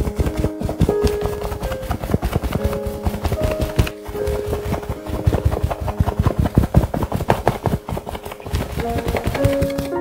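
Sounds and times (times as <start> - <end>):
paint tool tapping on canvas: 0.0 - 10.0.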